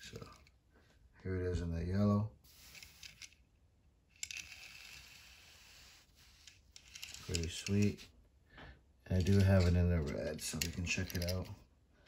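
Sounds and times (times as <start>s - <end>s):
toy car clicks: 4.1s - 5.2s, 6.4s - 8.0s
toy car scraping on mat: 4.2s - 8.0s.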